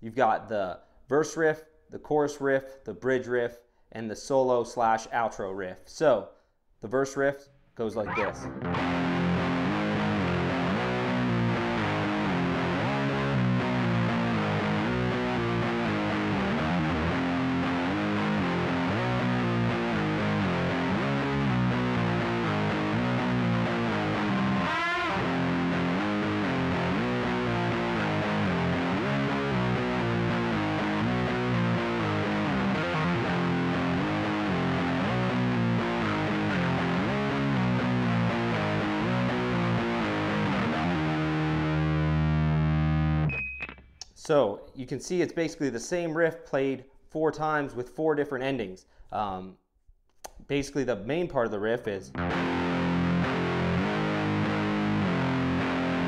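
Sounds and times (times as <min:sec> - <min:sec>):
distorted electric guitar riff: 0:08.0 - 0:43.9, 0:52.1 - 0:56.0.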